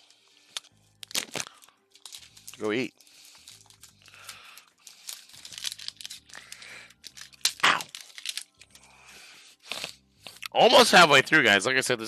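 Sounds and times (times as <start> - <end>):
foil wrapper tearing and crinkling: 0.5 - 8.9.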